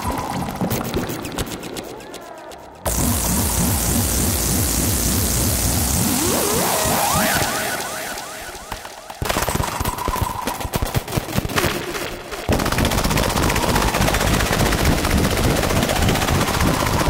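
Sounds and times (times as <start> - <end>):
faint high synthesizer tone: 0.0 - 9.3
synthesizer crackling clicks: 0.0 - 17.0.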